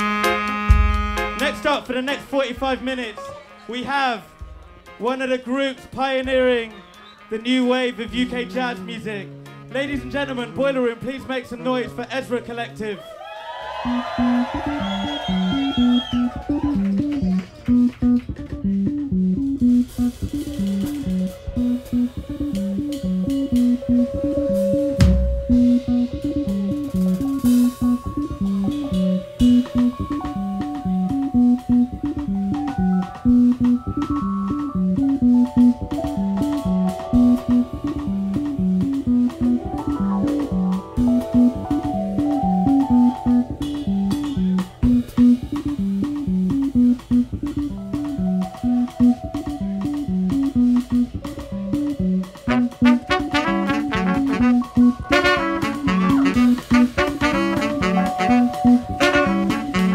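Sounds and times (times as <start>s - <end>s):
drum kit groove with cymbals: 0.0s - 3.0s, 13.9s - 59.9s
bass riff: 0.0s - 5.3s, 13.8s - 59.9s
higher held notes: 13.7s - 59.9s.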